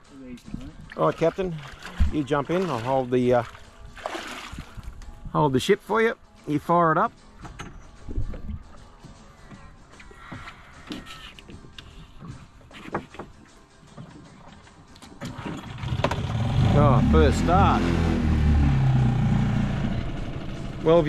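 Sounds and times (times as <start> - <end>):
knocks in a boat: 1.8 - 2.7
outboard motor idling: 15.6 - 21.0.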